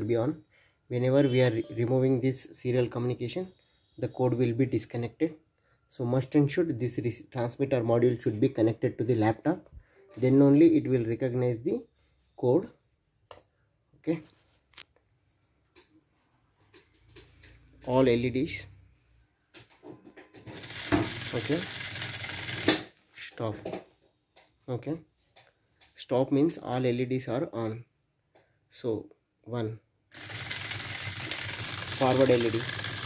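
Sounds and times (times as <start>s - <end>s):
man speaking: 0.0s - 5.3s, 6.0s - 11.8s
gear motors whirring: 20.6s - 22.7s, 30.1s - 33.0s.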